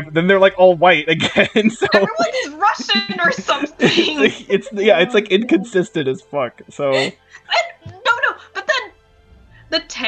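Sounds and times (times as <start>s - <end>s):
voices talking: 0.0s - 8.9s
faint background music: 0.0s - 10.0s.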